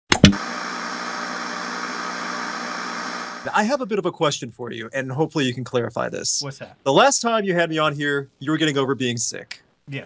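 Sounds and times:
static noise hiss: 0.3s - 3.7s.

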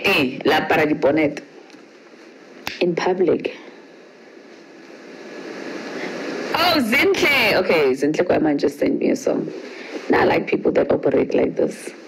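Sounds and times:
phone microphone hiss: 0.0s - 12.0s.

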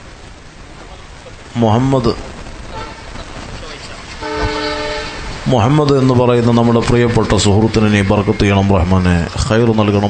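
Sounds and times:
background hiss: 0.0s - 10.0s
horn steady note: 2.4s - 3.5s, 4.2s - 9.3s.

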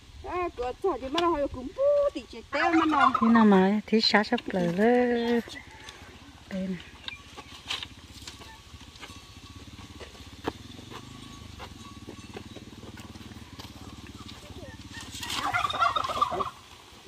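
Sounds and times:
fowl rattling call: 2.6s - 3.6s, 7.1s - 8.9s, 13.1s - 16.7s.

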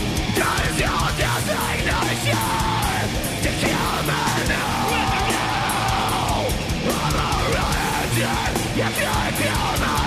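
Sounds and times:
live heavy rock band: 0.0s - 10.0s
singer yelling a held note: 4.3s - 6.5s.

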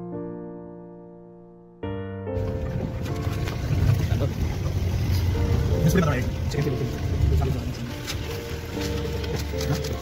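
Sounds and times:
piano music: 0.0s - 10.0s
loud uneven low rumble: 2.4s - 9.3s.

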